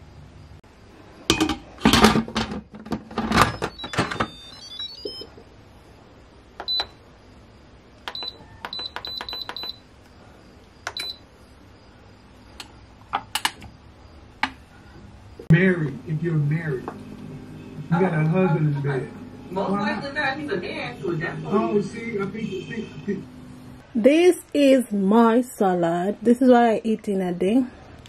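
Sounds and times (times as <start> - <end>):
control panel beeping: 3.4 - 5.3, 6.6 - 7.0, 8.1 - 9.8, 10.8 - 11.2.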